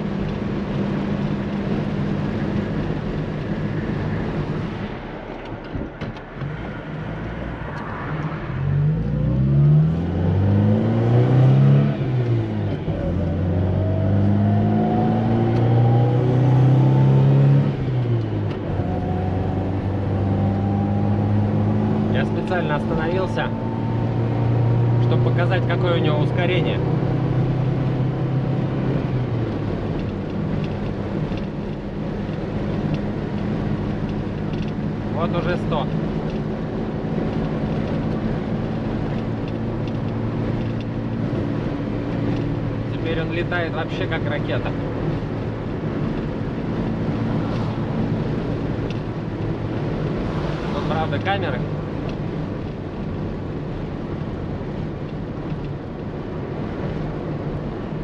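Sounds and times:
car engine accelerating: 0.0 - 58.0.

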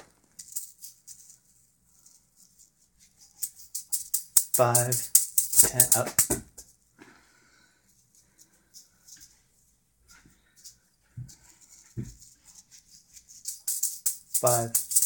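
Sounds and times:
juggling balls rattling: 0.0 - 6.7, 10.6 - 15.0.

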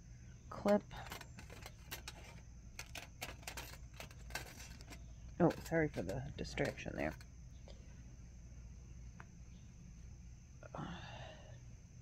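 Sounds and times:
small objects clicking and rattling: 0.7 - 7.3.

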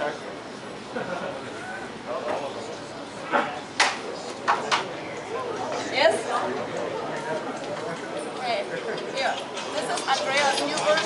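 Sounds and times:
faint voices in a hall: 0.0 - 11.0.

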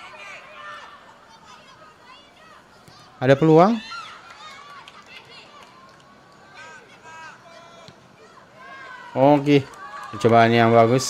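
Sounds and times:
players and onlookers shouting: 0.0 - 11.0.

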